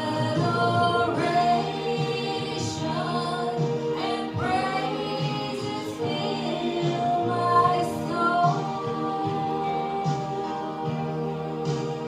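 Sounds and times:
woman singing into microphone: 0.0s - 12.0s.

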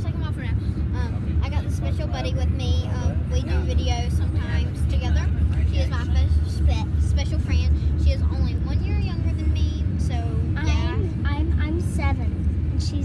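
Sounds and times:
car rumble from inside: 0.0s - 13.0s
children talking: 0.0s - 13.0s.

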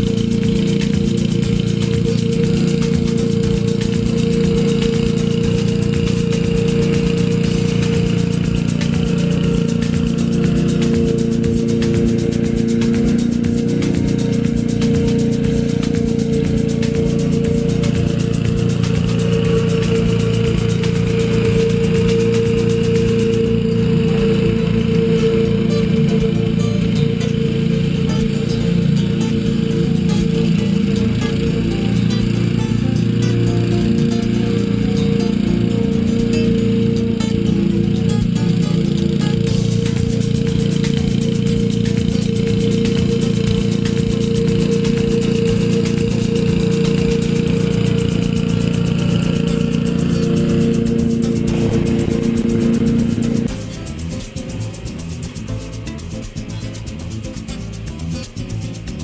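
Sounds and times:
background music: 0.0s - 59.0s
lawn mower engine running: 0.0s - 59.0s.

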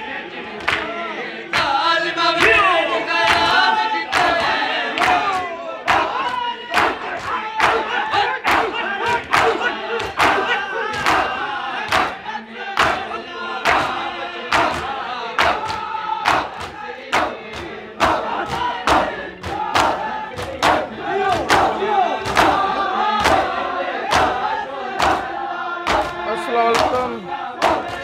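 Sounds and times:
men chanting in unison: 0.0s - 28.0s
hands slapping chests: 3.3s - 12.2s, 12.8s - 25.3s, 25.9s - 28.0s.

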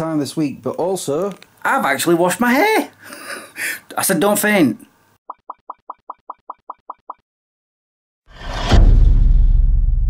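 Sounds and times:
whoosh: 8.3s - 10.0s
deep boom with low rumble: 8.5s - 10.0s.

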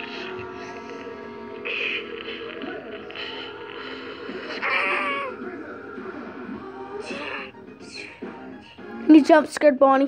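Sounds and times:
cat meowing: 4.5s - 5.4s.

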